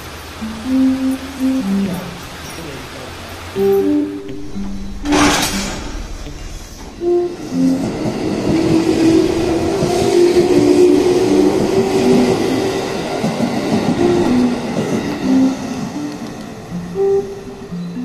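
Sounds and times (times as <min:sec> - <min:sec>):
electric train rushing past: 0:00.0 - 0:18.0
background music: 0:00.4 - 0:02.6, 0:03.5 - 0:18.0.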